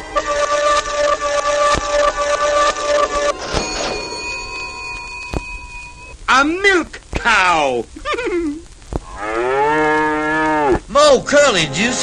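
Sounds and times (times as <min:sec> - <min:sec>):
electronic humming tone: 0:00.0 - 0:06.2
thin high held tones: 0:00.0 - 0:06.6.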